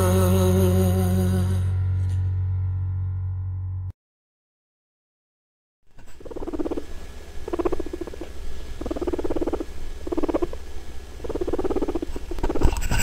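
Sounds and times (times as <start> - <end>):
low steady hum: 0.0 - 3.9, 5.9 - 13.0
guinea pigs pulsing call: 6.0 - 12.7.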